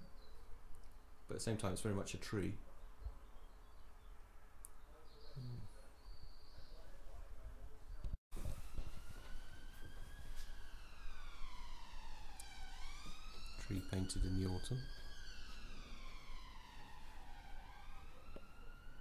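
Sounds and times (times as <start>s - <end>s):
emergency vehicle siren wailing: 8.4s - 19.0s.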